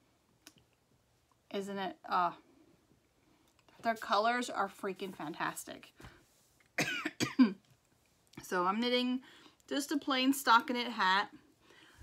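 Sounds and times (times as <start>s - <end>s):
woman coughing: 6.8s - 7.6s.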